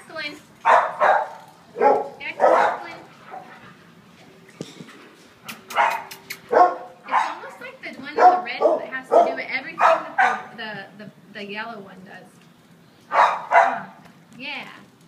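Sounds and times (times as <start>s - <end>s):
dogs barking and yipping: 0.6s - 4.0s, 5.5s - 10.6s, 13.0s - 14.0s.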